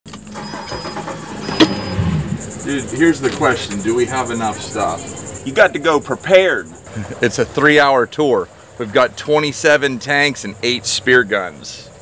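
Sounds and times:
outboard engine idling: 0.2s - 10.4s
high beep: 0.4s - 2.3s.

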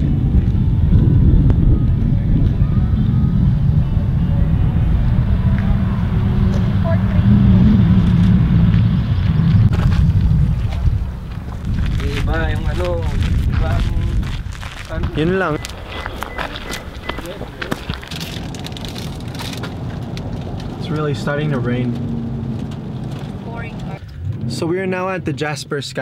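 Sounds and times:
wind buffeting microphone: 0.0s - 20.8s
voices talking: 1.7s - 8.0s, 14.8s - 18.7s.

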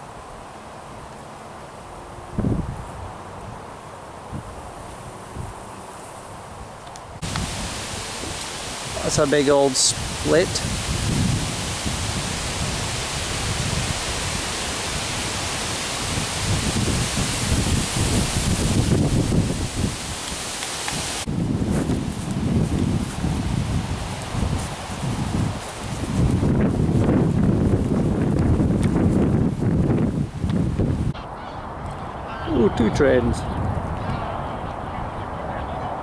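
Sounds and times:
wind through leafy trees: 0.0s - 36.0s
wind buffeting microphone: 2.3s - 3.7s, 6.4s - 36.0s.

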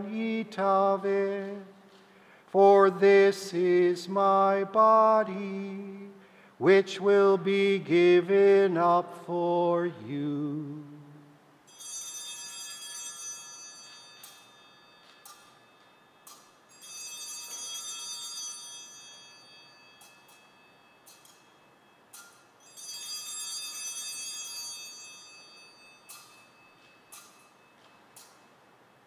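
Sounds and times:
altar bells ringing: 11.6s - 28.6s.

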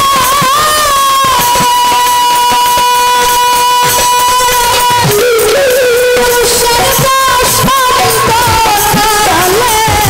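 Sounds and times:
band playing: 0.0s - 10.0s
percussion strokes: 0.0s - 10.0s
woman singing into a microphone: 0.0s - 10.0s.

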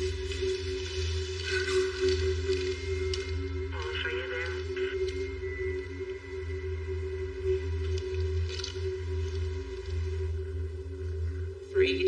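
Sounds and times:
low droning hum: 0.0s - 12.0s.

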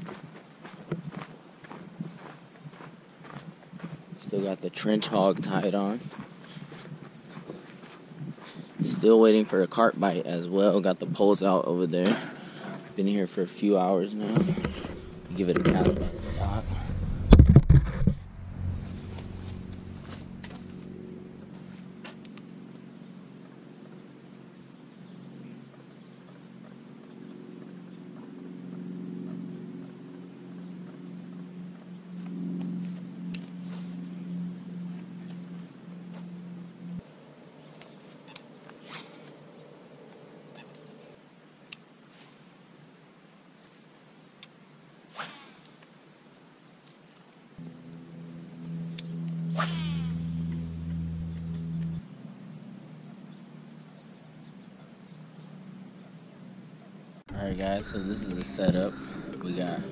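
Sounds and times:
fishing rod swishing: 45.1s - 45.8s, 49.4s - 50.5s
fishing reel whirring: 47.6s - 51.9s.

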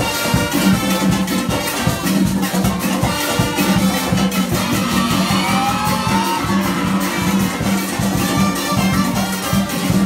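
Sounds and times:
bass drum: 0.0s - 10.0s
percussion and brass band: 0.0s - 10.0s.

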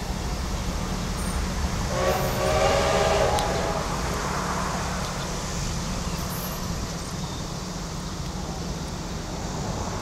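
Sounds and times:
low rumble of train: 0.0s - 10.0s
locomotive horn blast: 1.9s - 4.0s.

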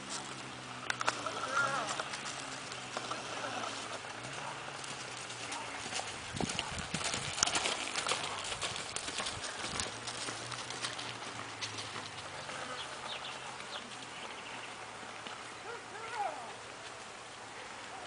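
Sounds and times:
horse hoofbeats on dirt: 0.0s - 18.0s.

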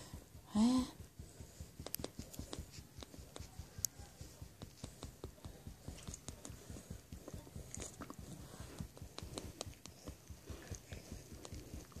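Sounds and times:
pet chewing food: 4.6s - 12.0s.

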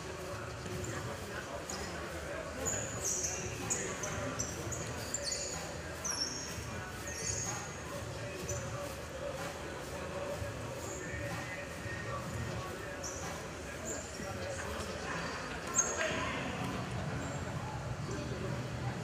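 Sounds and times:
echoing sports hall ambience: 0.0s - 19.0s
shoes squeaking on wooden floor: 15.3s - 17.4s.

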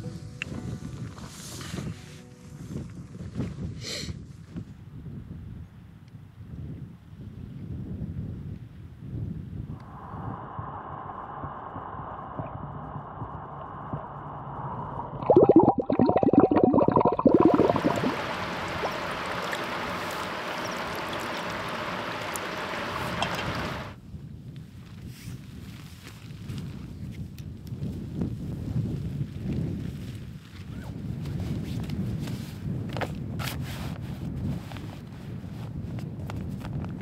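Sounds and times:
underwater gurgle: 11.7s - 24.0s
hand splashing water: 15.2s - 23.9s
steady hiss: 16.8s - 24.0s.

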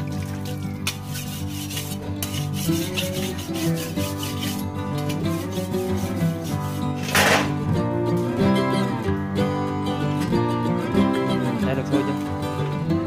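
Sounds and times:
background music: 0.0s - 13.0s
knives scraping blade against blade: 0.9s - 7.5s.

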